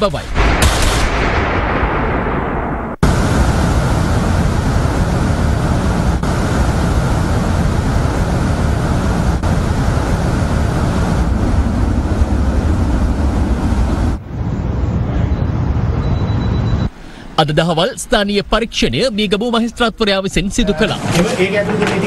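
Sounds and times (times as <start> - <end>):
deep rumble: 0.0 - 16.9
loud rushing noise: 0.4 - 16.8.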